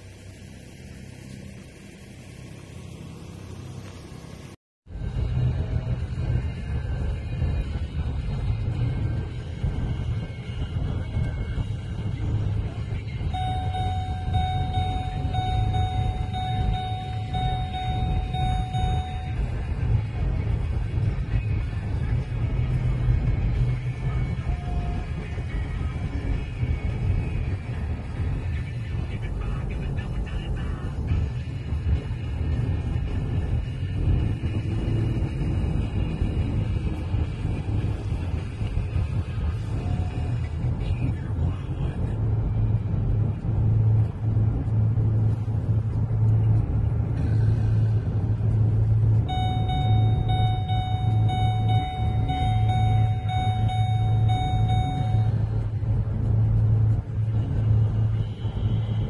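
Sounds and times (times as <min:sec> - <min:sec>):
car driving rumble: 0:00.0 - 0:59.0
music playing: 0:07.8 - 0:26.1, 0:48.0 - 0:58.8
thin steady tone: 0:12.1 - 0:22.2, 0:47.2 - 0:59.0.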